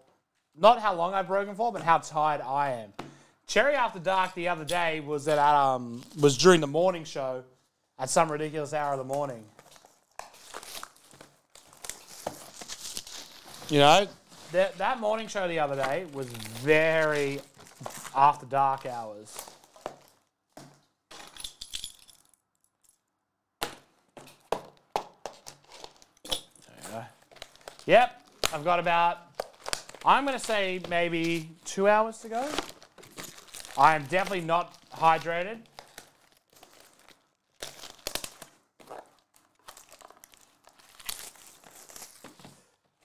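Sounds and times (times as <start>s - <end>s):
plastic film crinkling: 8.7s - 21.3s, 25.2s - 43.0s.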